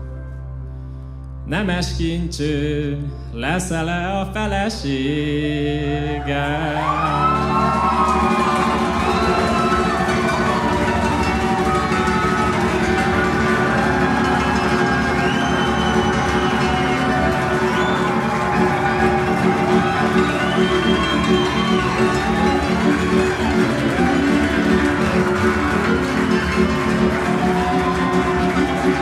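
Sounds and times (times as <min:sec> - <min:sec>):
double bass: 0:00.0 - 0:29.0
fiddles playing gliding melody: 0:06.1 - 0:29.0.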